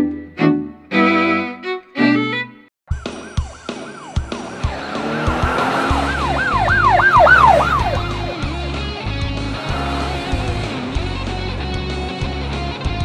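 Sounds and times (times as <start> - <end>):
music: 0.0 - 13.0
police siren wailing: 2.9 - 11.3.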